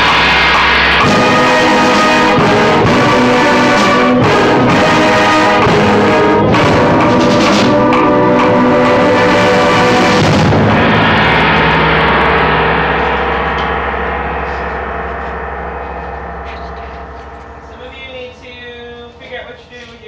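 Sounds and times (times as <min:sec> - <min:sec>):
concert band loud chord: 0:00.0 - 0:20.0
struck metal percussion ringing: 0:00.0 - 0:20.0.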